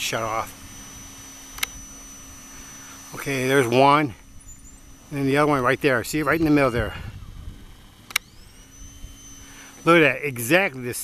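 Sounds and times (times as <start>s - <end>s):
camera zoom lens motor whine: 0.0s - 11.0s
low rumble of handling noise: 0.0s - 11.0s
sharp click: 1.5s - 1.8s, 8.1s - 8.4s.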